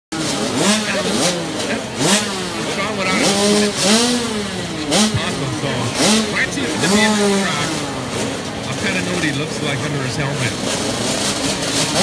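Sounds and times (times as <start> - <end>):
dirt bikes revving: 0.1 - 12.0.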